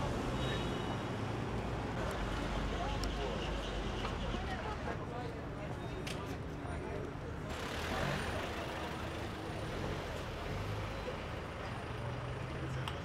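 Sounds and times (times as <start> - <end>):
road traffic: 0.0 - 5.0, 7.3 - 13.0.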